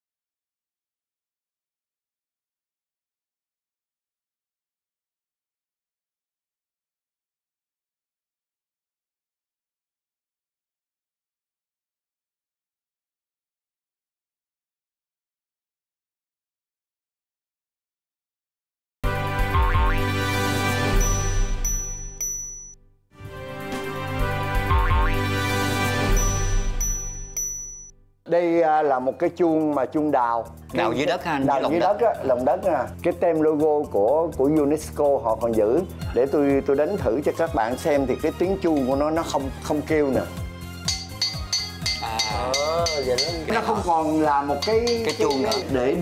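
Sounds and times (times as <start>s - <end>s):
tv theme jingle: 19.1s - 28.0s
wavering melodic line: 20.9s - 22.7s, 40.9s - 43.6s, 44.6s - 46.0s
high bright chime: 20.9s - 22.8s, 26.1s - 27.9s, 40.9s - 43.6s, 44.6s - 45.9s
quick percussive beat: 40.9s - 46.0s.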